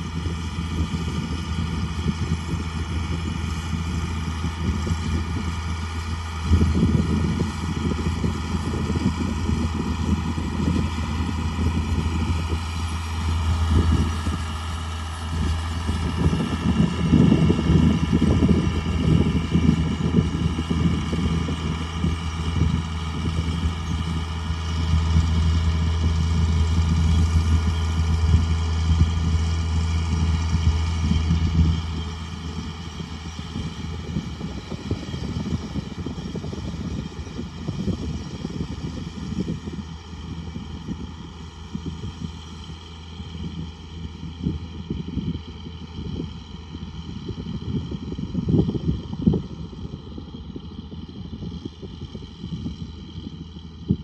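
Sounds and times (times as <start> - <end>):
tractor diesel engine under load: 0.0 - 54.0.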